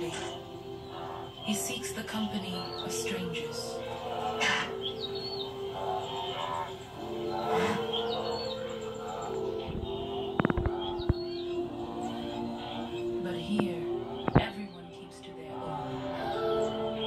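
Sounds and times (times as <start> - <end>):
high bird chirps: 0.0 - 15.3
sustained documentary music: 0.0 - 17.0.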